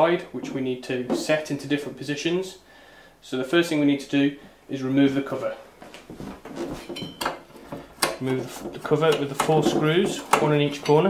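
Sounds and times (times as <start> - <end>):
screwdriver clinking and knocking: 6.8 - 8.2.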